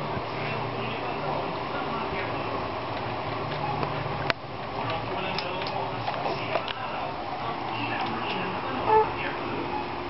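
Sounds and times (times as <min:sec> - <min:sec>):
steady background noise: 0:00.0 - 0:10.0
baby vocalizing: 0:08.8 - 0:09.2.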